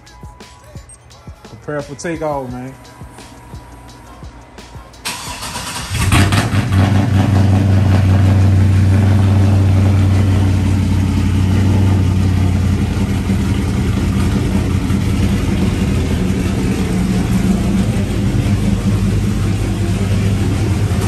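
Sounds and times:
starter motor cranking: 5.1s - 6.5s
engine idling loudly: 5.1s - 21.0s.

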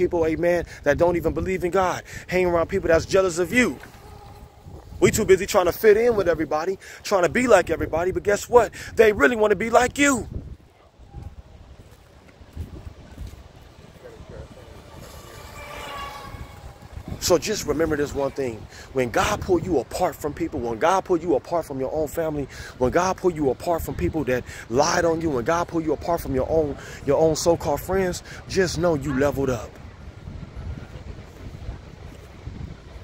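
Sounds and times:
wind rumble on microphone: 0.0s - 20.8s, 21.7s - 33.0s.

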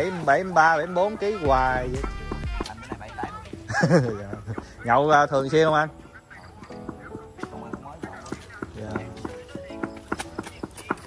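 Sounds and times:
clip-clop clicks: 2.0s - 11.0s.

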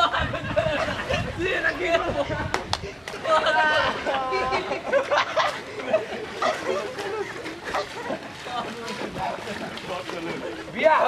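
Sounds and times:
legs wading through water: 0.0s - 11.0s.

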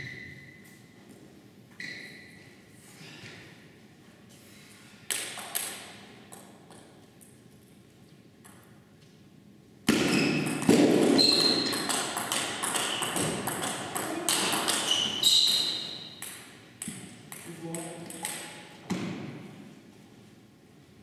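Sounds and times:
ball bouncing on table: 9.9s - 19.4s
table tennis ball clicking off bats: 10.5s - 18.6s.

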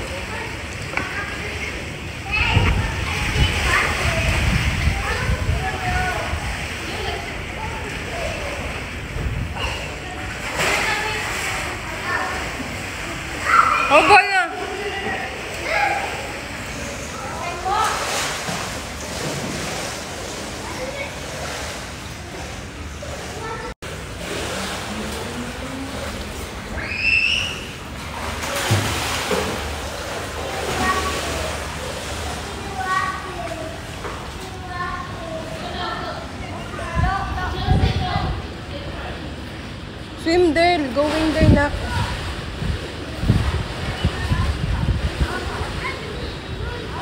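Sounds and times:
children's voices: 0.0s - 39.2s, 40.2s - 47.0s
water splashing in pool: 0.0s - 47.0s
loud high cry: 26.8s - 27.7s.

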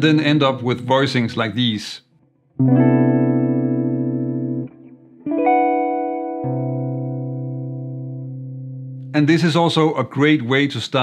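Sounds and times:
electric guitar chords: 2.6s - 9.2s.

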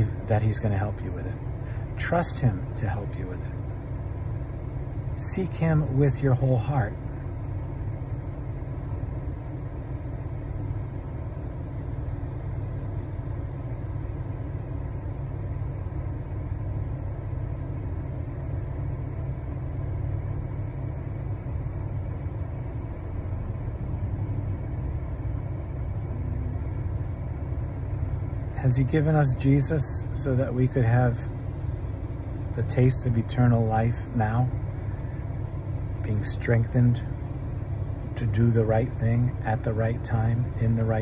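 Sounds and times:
low rumble inside car cabin: 0.0s - 41.0s.

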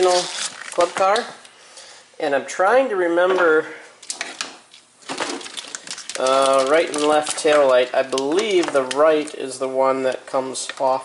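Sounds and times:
wires and plastic rustling: 0.0s - 1.5s, 4.0s - 11.0s.

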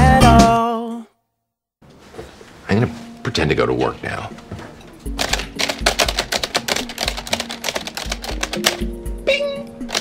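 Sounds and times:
rapid keyboard typing: 5.1s - 9.0s.

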